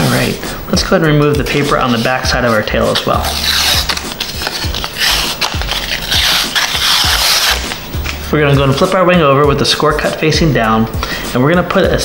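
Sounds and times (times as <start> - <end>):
paper tearing off foam board: 1.6 - 7.9.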